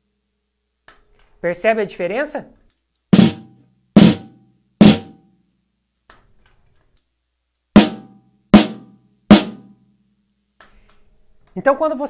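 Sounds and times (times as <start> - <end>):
snare drum strokes: 3.2 - 5.2.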